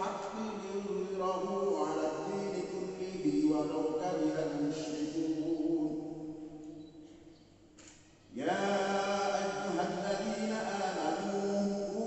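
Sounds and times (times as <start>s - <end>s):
man chanting through microphone: 0.0s - 6.7s, 8.3s - 12.0s.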